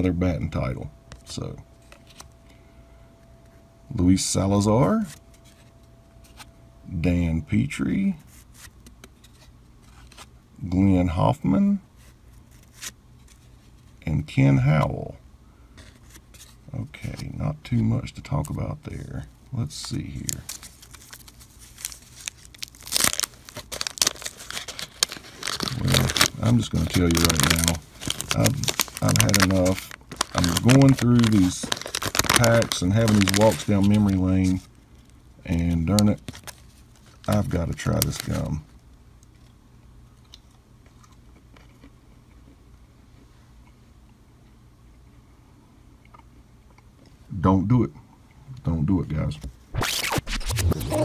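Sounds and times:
wax-paper wrapper tearing and crinkling: 0:20.1 - 0:38.7.

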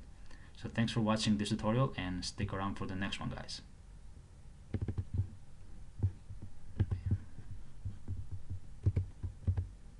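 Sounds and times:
microphone handling thumps: 0:04.7 - 0:05.4, 0:06.0 - 0:09.7.

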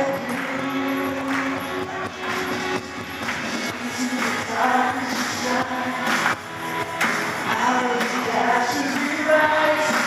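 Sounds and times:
live band playing worship song: 0:00.0 - 0:10.0.

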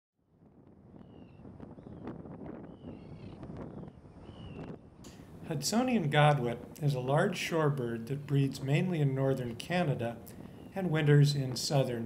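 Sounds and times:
low wind rumble: 0:00.2 - 0:12.0
high whistled bird calls: 0:01.0 - 0:05.1, 0:10.4 - 0:10.8.

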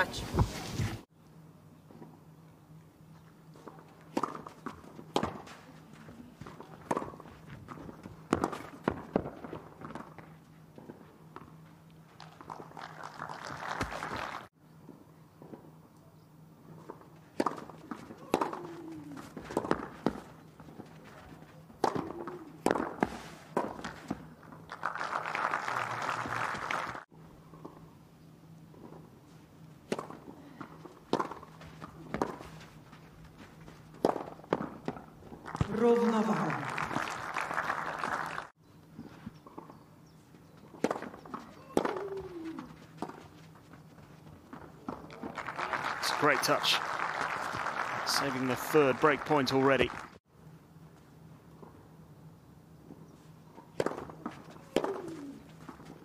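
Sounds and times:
tennis ball hit by racquets: 0:03.6 - 0:11.0, 0:16.9 - 0:20.8, 0:21.8 - 0:24.3, 0:29.9 - 0:32.6, 0:34.0 - 0:35.8, 0:40.5 - 0:43.3, 0:53.7 - 0:56.0
spectators applauding: 0:12.3 - 0:14.5, 0:24.7 - 0:27.1, 0:35.5 - 0:38.5, 0:45.1 - 0:50.2.

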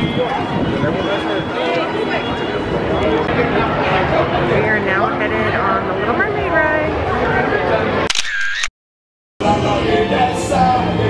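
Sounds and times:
soundtrack music with singing: 0:09.4 - 0:11.0.

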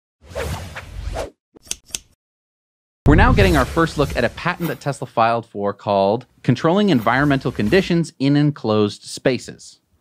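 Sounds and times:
scissor-like snips: 0:01.6 - 0:02.2
whoosh: 0:03.1 - 0:04.8.

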